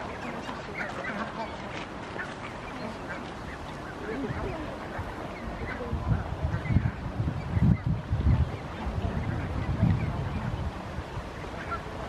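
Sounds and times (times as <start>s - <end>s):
geese calling: 0.0s - 12.0s.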